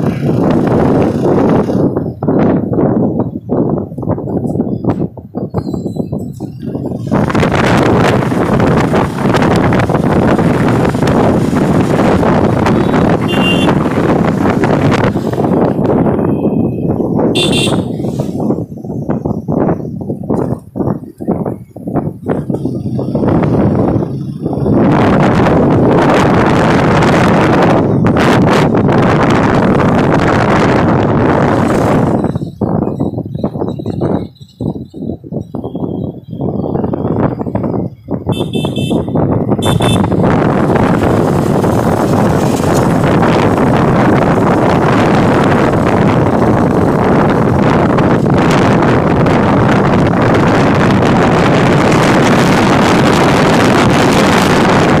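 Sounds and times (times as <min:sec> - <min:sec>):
motorcycle road noise: 0:00.0 - 0:55.0
wind buffeting microphone: 0:00.0 - 0:55.0
horn beeping: 0:12.7 - 0:13.9, 0:16.0 - 0:18.2, 0:38.3 - 0:40.3.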